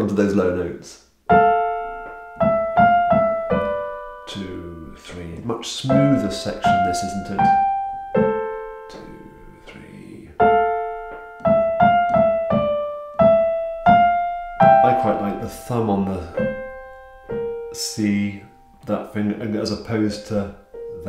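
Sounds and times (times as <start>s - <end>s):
lyrical piano playing: 1.2s - 21.0s.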